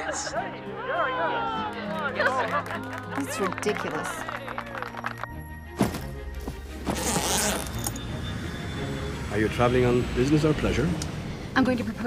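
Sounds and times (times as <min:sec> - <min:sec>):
background music with low notes: 0:00.0 - 0:12.0
suitcase zipper pulled closed: 0:06.8 - 0:08.0.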